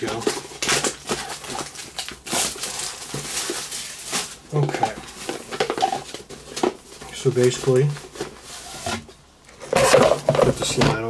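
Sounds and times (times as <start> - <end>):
cardboard box rustling and scraping: 4.8 - 10.8.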